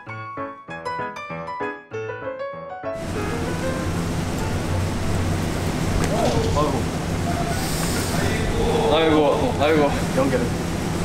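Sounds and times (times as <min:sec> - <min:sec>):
piano music: 0:00.0 - 0:07.6
room hum: 0:03.0 - 0:11.0
faint voices: 0:06.1 - 0:10.2.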